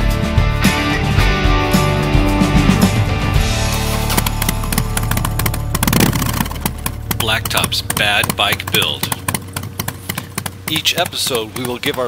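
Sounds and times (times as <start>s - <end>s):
rock music: 0.0s - 9.2s
steady low hum: 3.8s - 12.0s
sharp clicking hits: 4.0s - 12.0s.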